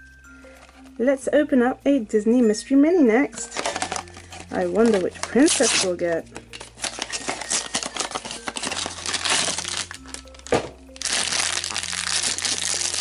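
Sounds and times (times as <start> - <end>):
background music with low notes: 0.0 - 13.0
foil bag crinkling: 3.4 - 13.0.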